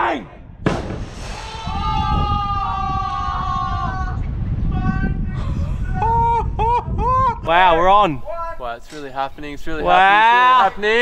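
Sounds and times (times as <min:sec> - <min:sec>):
wind rumbling on microphone: 0:00.2 - 0:10.1.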